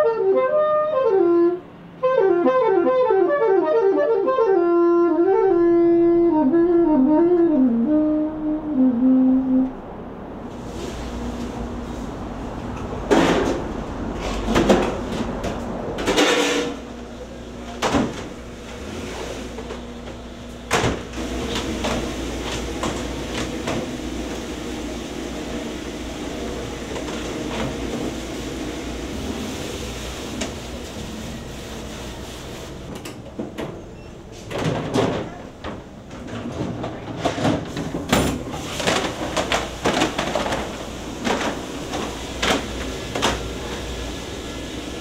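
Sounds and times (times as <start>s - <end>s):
steady hum: 0.3s - 32.9s
plastic trays clattering: 34.6s - 41.6s.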